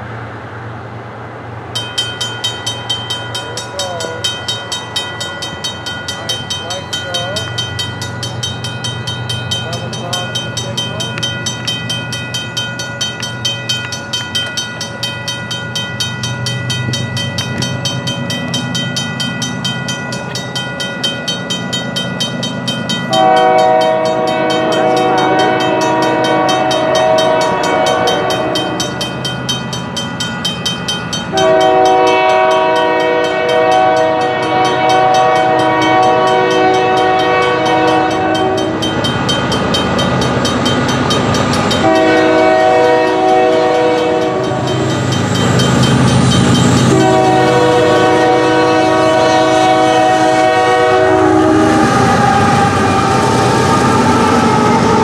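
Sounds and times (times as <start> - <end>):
diesel locomotive rumble: 0.0 - 55.0
crossing bell ringing: 1.7 - 55.0
locomotive horn blasts: 23.1 - 28.9, 31.3 - 38.8, 41.8 - 44.8, 46.8 - 53.1.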